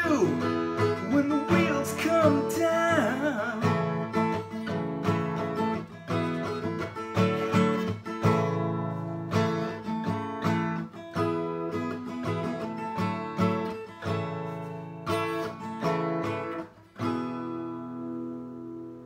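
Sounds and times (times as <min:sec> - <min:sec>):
person singing: 0:00.0 - 0:04.2
acoustic guitar strumming: 0:00.0 - 0:19.0.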